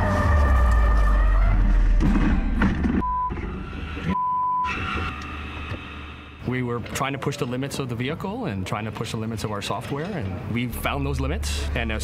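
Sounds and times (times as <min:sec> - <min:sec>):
short electronic beeps: 0:04.1 - 0:04.8.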